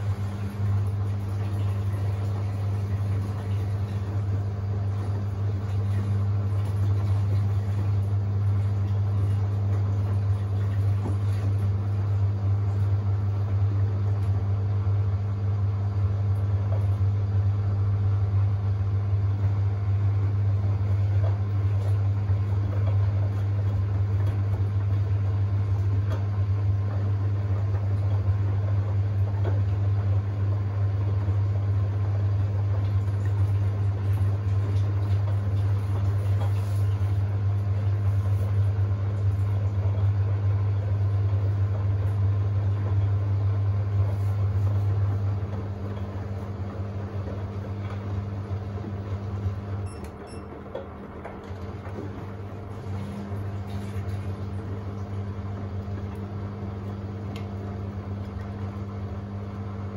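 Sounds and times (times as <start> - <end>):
steady low hum: 0.0 - 59.9
washing machine drum tumbling: 0.0 - 59.9.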